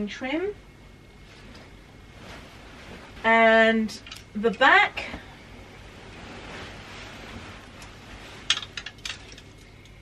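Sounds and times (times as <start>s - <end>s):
fabric rustling: 1.2s - 3.9s, 5.0s - 9.6s.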